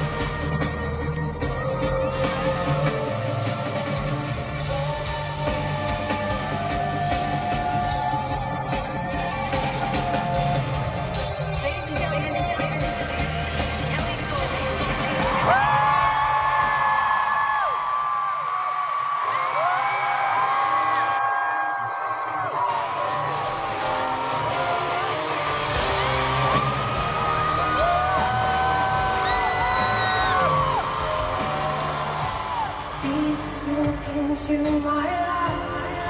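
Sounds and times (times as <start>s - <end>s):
electronic pop music: 0.0s - 17.9s, 22.2s - 36.0s
fans screaming and whooping: 0.0s - 36.0s.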